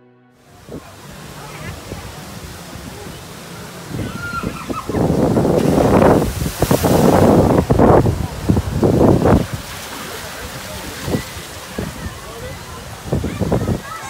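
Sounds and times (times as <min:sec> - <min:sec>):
voices: 0:00.4 - 0:14.0
water rushing and splashing: 0:00.4 - 0:14.0.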